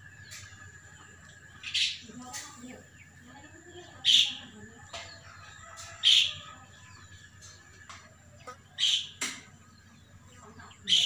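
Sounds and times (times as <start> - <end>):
bird calling: 0.0 - 11.0.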